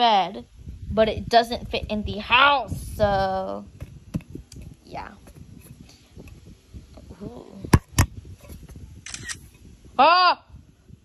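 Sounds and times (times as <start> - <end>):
phone camera shutter sound: 9.0 - 9.5.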